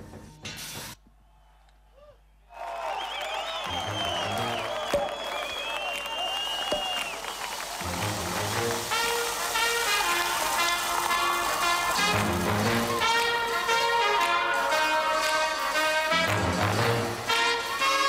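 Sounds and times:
audience applause and cheering: 2.5s - 18.0s
brass chords: 7.8s - 18.0s.

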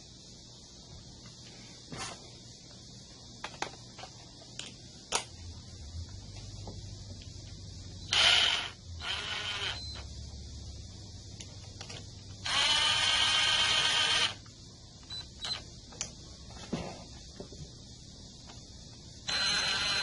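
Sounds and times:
power driver spinning a socket: 8.1s - 10.0s, 19.3s - 20.0s.

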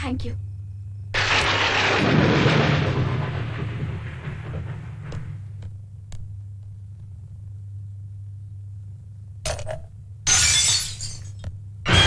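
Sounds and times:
steady low hum: 0.0s - 11.9s
crockery shattering on floor: 10.3s - 12.0s.

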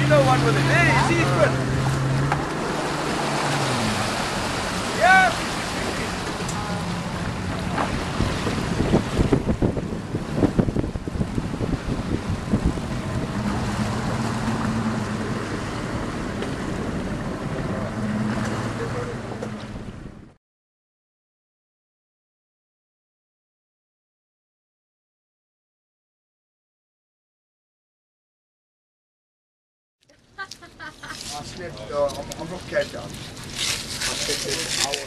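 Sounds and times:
wind buffeting microphone: 0.0s - 18.2s
boat engine humming: 0.0s - 20.4s, 30.1s - 35.0s
rush of wind and water: 0.0s - 20.4s, 30.6s - 35.0s.

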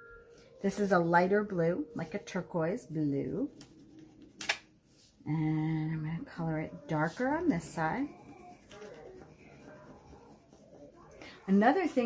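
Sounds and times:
crayon rubbing on paper: 6.4s - 12.0s.

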